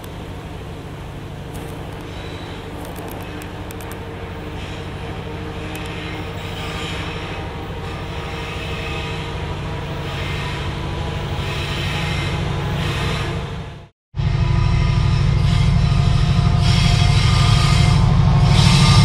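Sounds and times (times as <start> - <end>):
diesel locomotive engine drone: 0.0 - 19.0.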